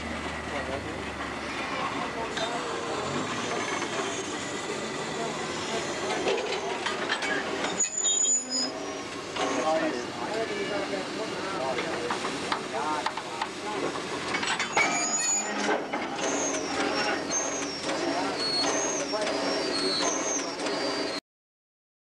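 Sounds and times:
railway carriage rolling past: 0:00.0 - 0:21.2
people's voices: 0:00.4 - 0:14.4
short high-pitched squeals: 0:07.6 - 0:10.9, 0:14.6 - 0:21.2.

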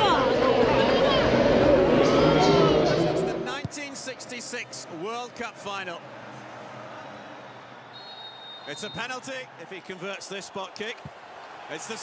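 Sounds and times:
crowd hubbub: 0:00.0 - 0:03.5.

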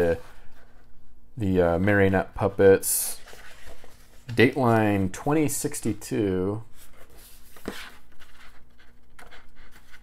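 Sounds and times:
faint steady hum: 0:00.0 - 0:10.0
paper rustling: 0:02.1 - 0:10.0.

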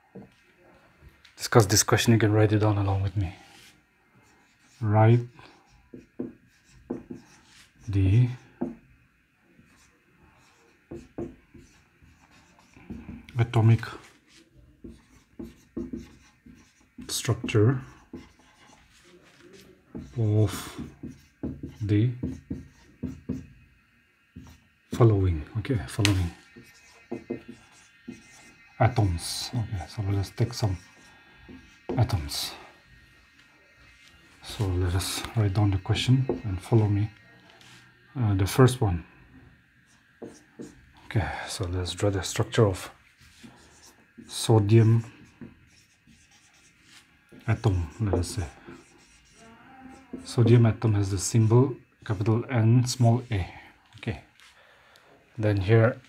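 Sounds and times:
marker writing on whiteboard: 0:02.5 - 0:37.9, 0:39.6 - 0:41.0, 0:42.3 - 0:53.5.

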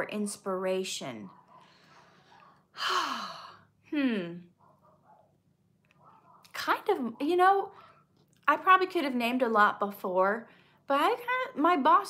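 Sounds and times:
woman sighing: 0:02.8 - 0:04.4
woman saying hmm: 0:03.9 - 0:04.5.

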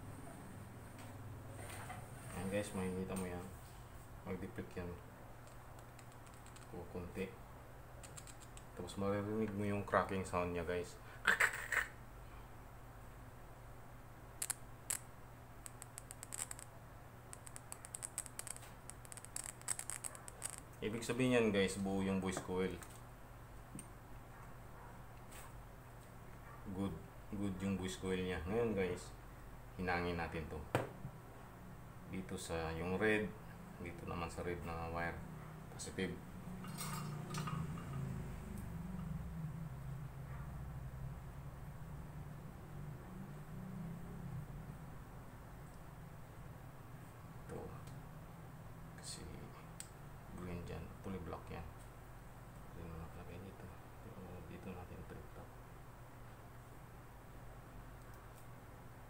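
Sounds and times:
steady low hum: 0:00.0 - 0:59.0
small metal parts clicking: 0:05.4 - 0:06.7, 0:08.0 - 0:08.7, 0:15.6 - 0:16.7, 0:17.3 - 0:20.7.

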